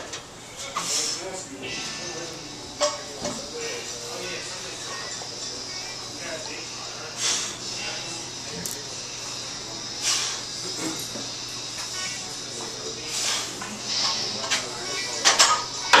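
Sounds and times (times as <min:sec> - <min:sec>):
indistinct voices: 0:01.2 - 0:16.0
breathy exhale bursts: 0:10.0 - 0:10.4.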